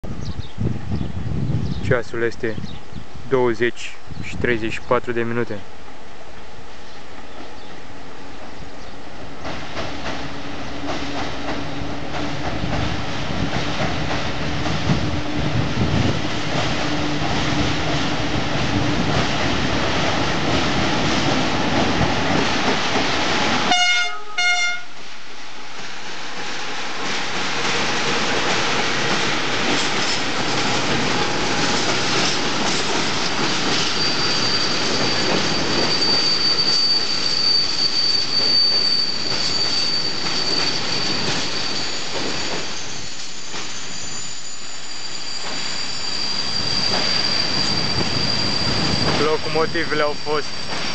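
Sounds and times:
train wheels rumbling and clattering: 8.4 - 23.8, 25.8 - 44.6, 45.3 - 50.9
train horn blast: 23.7 - 25.0
high-pitched wheel squeal: 33.5 - 50.9.

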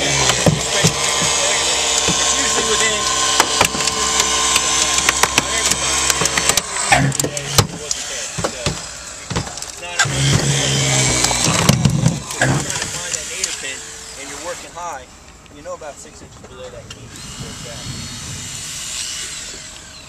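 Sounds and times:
motor humming: 0.0 - 20.0
metal and plastic cracking: 3.4 - 7.8.

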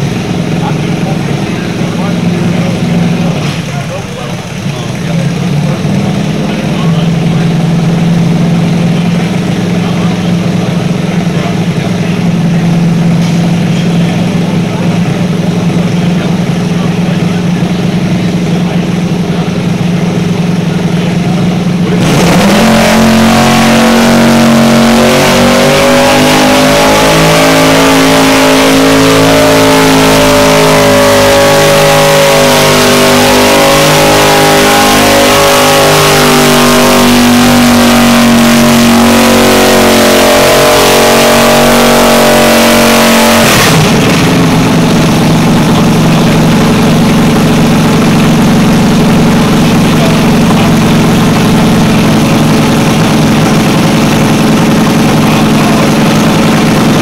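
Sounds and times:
tractor engine revving: 0.0 - 57.0.

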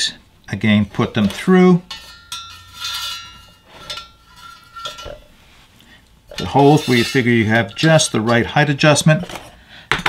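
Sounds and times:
steel can ringing: 1.8 - 5.3
soft metal clinks: 1.8 - 9.2.

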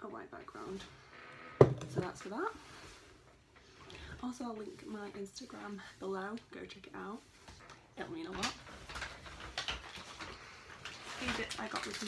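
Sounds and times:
shopping bag rustling: 8.4 - 12.0.

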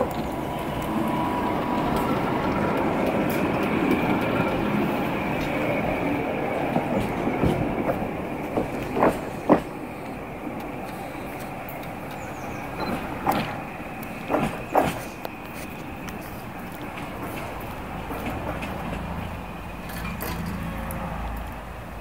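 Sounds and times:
tram rumbling along rails: 0.0 - 22.0.

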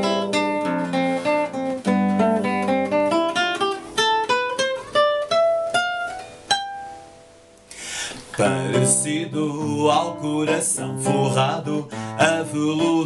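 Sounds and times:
fingerstyle classical guitar: 0.0 - 13.0.

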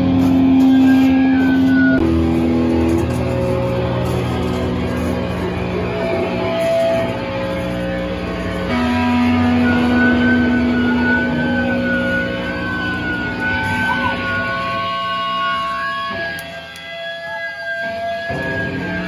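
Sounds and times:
guitar amplifier feedback: 0.0 - 19.0.

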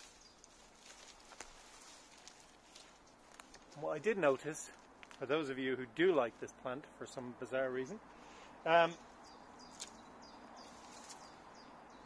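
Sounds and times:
bird chirping: 8.2 - 12.0.

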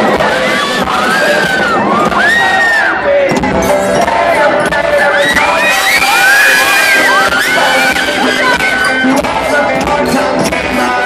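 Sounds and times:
crowd cheering and screaming: 0.0 - 11.0.

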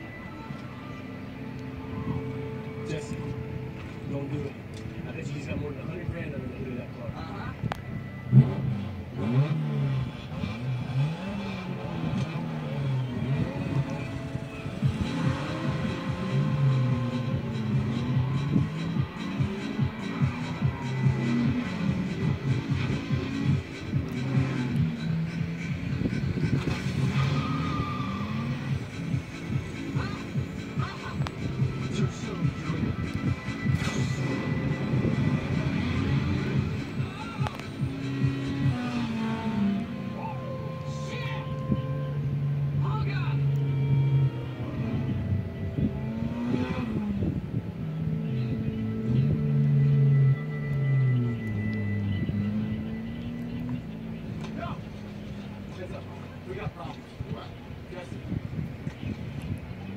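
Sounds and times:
car engines revving: 0.0 - 59.9
film music score: 12.0 - 56.1
tyre squeal: 24.2 - 28.8.

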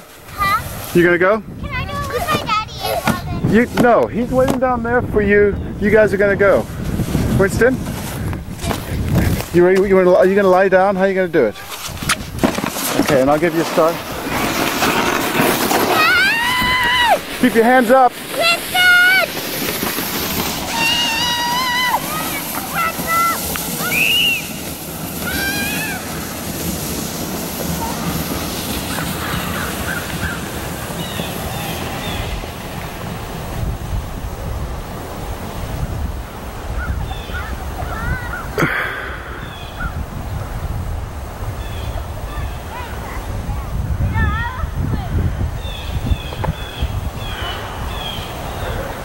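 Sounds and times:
wind rumble on microphone: 0.0 - 10.8, 15.3 - 17.8, 18.4 - 49.0
children shouting and squealing: 1.6 - 3.5, 15.8 - 17.4, 18.2 - 19.5, 20.5 - 26.4, 37.1 - 39.6.

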